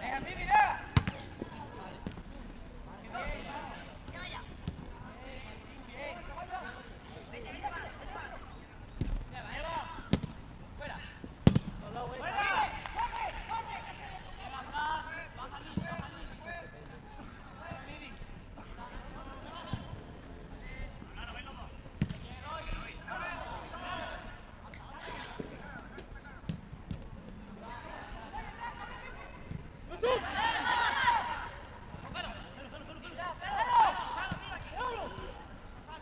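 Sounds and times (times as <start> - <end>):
footballers shouting: 0.0 - 8.7, 9.3 - 21.8, 22.4 - 36.0
ball kick thuds: 0.9 - 2.2, 10.1 - 10.4, 11.4 - 12.0, 22.0 - 22.3.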